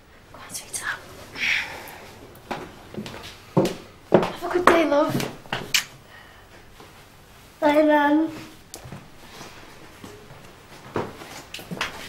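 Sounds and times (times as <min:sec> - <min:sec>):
person whispering: 0:00.3 - 0:02.0.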